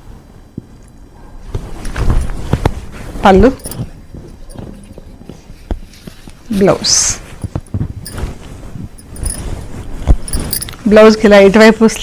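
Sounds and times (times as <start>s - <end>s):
cloth rustling: 1.4s - 12.0s
bangles clinking: 3.4s - 11.1s.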